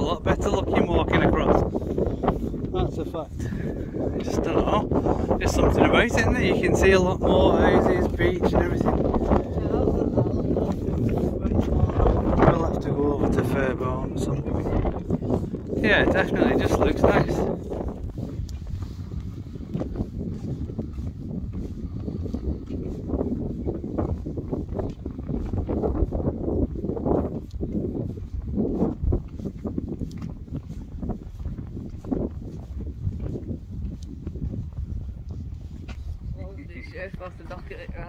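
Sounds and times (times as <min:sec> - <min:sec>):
wind rumbling on microphone: 0:00.0 - 0:38.0
footsteps on wooden boards: 0:07.7 - 0:36.4.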